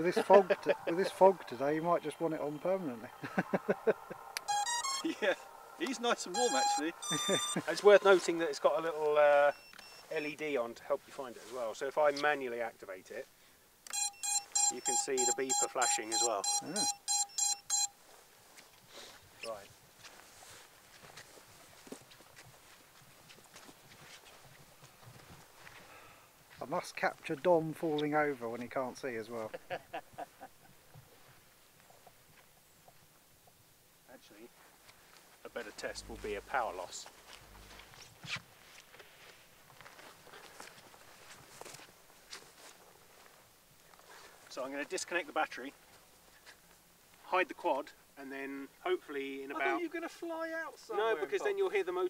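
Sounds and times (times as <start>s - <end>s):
buzzer rapid short beeps: 4.5s - 5.1s, 6.4s - 7.6s, 13.9s - 17.9s
footsteps on grass: 7.2s - 9.3s, 18.0s - 25.9s, 34.6s - 44.5s.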